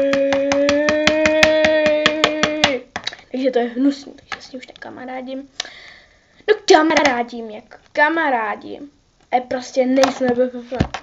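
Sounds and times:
girl holding long vowel: 0.0s - 2.9s
rapid even tapping: 0.0s - 3.1s.

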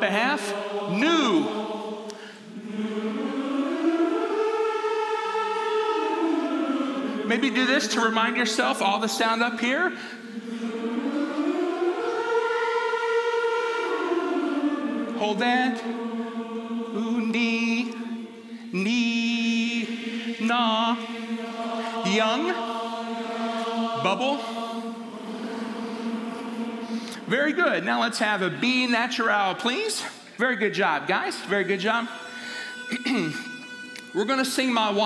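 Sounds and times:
choir holding a chord: 0.0s - 29.4s, 31.4s - 35.0s
group singing lip trill: 0.3s - 7.6s, 10.2s - 27.3s.

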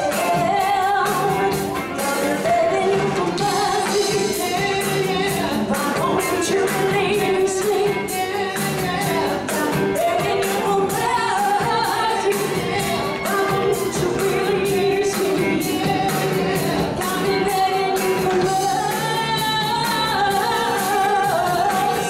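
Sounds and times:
lead singer singing: 0.0s - 22.0s
live band playing: 0.0s - 22.0s
steady drum beat: 0.0s - 22.0s.

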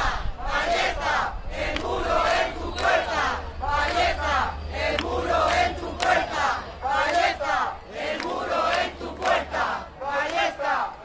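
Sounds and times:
crowd chanting: 0.0s - 11.0s.

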